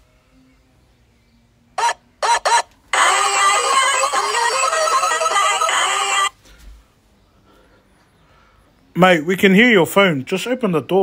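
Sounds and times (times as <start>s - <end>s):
mobile phone ringtone music: 1.8s - 6.4s.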